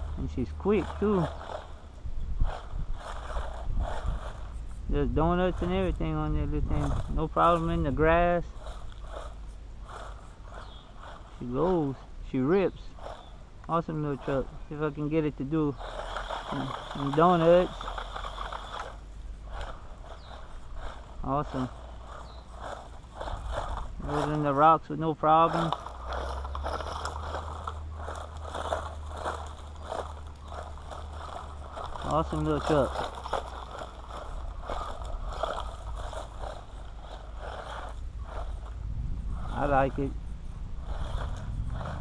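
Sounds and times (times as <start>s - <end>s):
rc truck motor whine: 0.0s - 42.0s
tyres crackling on loose ground: 0.0s - 42.0s.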